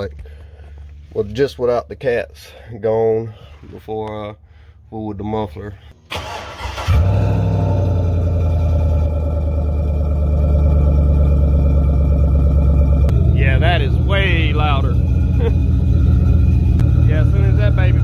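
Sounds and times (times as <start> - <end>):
loud engine idling: 7.7 - 18.0.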